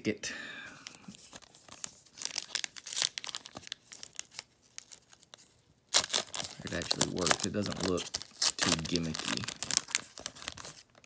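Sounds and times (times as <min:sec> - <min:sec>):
foil wrapper tearing and crinkling: 0:01.4 - 0:11.0.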